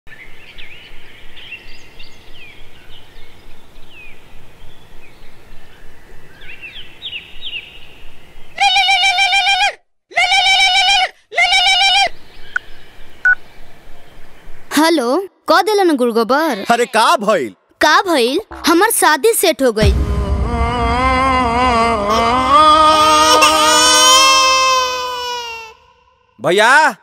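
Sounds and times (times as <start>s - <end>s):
birds chirping: 0.1s - 8.6s, 12.0s - 15.2s
outdoor background noise: 0.1s - 27.0s.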